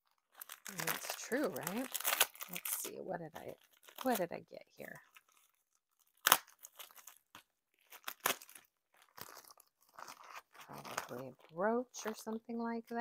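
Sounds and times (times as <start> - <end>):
sharp wrapping crunch: 0.0 - 12.4
wrapping crinkling: 0.0 - 13.0.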